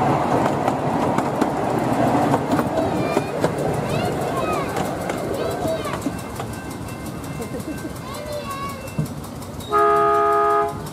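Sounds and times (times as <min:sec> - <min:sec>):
murmur of people talking: 0:02.2 - 0:09.4
miniature train horn blast: 0:09.6 - 0:10.9.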